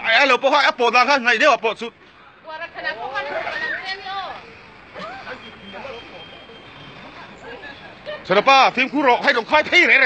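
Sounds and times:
truck passing: 0:01.9 - 0:10.0.

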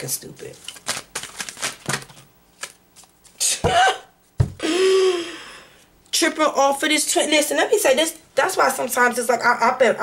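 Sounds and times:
cards shuffling: 0:00.3 - 0:03.5
woman sighing: 0:03.4 - 0:05.8.

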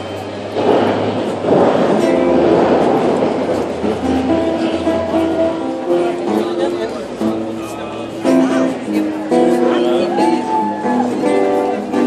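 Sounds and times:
held music notes: 0:00.0 - 0:12.0.

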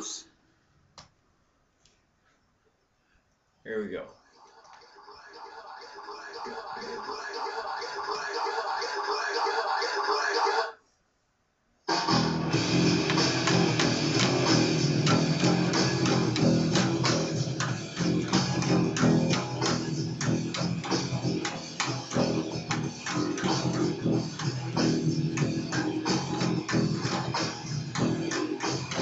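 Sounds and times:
heavy metal rock music: 0:12.0 - 0:29.0
electric bass playing: 0:12.1 - 0:29.0.

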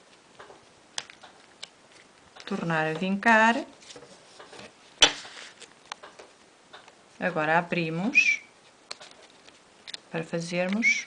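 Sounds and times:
paper crackle: 0:03.7 - 0:05.8.

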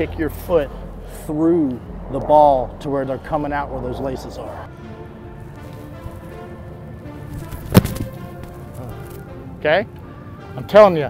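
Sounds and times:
background music: 0:00.0 - 0:11.0
foot kicking football thud: 0:07.3 - 0:08.6.

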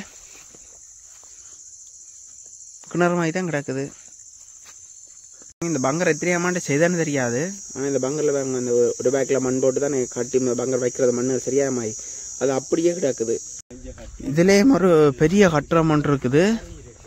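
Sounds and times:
insects chirring: 0:00.0 - 0:17.0.

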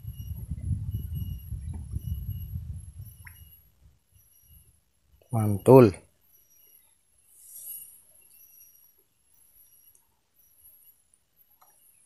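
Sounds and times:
low rumbling on microphone: 0:00.0 - 0:04.0
thin high chirps: 0:00.0 - 0:12.0.

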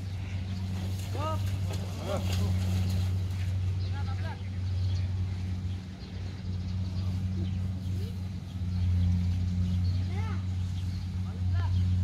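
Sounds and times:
distant voices calling: 0:00.0 - 0:12.0.

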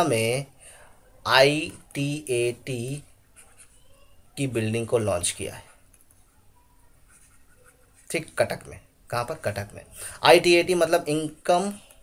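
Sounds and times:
stylus scratching on pen tablet: 0:03.2 - 0:03.8, 0:07.0 - 0:08.2.

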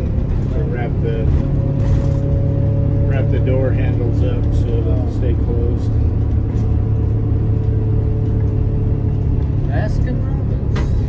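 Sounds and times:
diesel engine drone: 0:00.0 - 0:11.0
road noise: 0:00.0 - 0:11.0.

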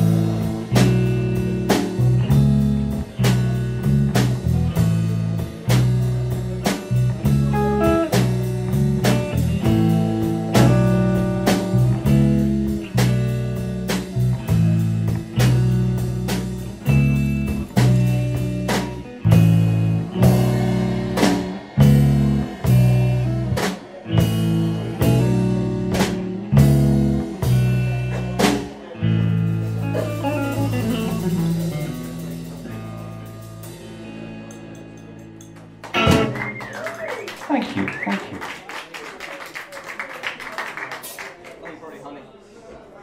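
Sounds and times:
bass guitar: 0:00.0 - 0:37.1
drum kit beat: 0:00.0 - 0:38.4
electric guitar: 0:00.0 - 0:38.5.

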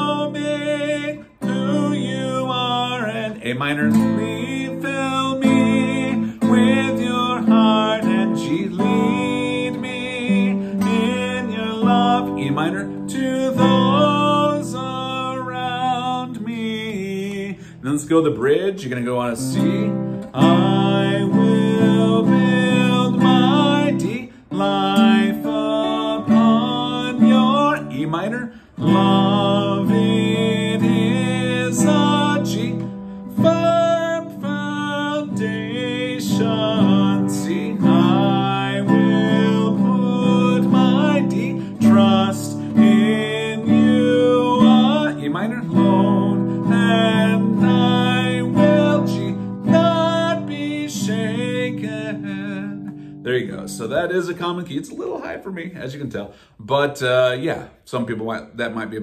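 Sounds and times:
classical guitar strummed: 0:00.0 - 0:54.3
man singing: 0:00.0 - 0:59.0.

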